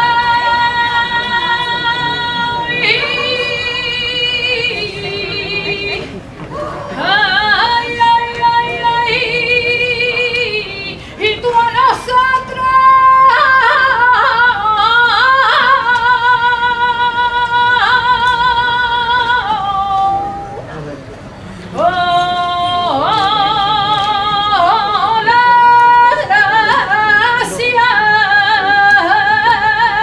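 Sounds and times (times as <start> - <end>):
solo voice singing unaccompanied: 0.0 - 20.6.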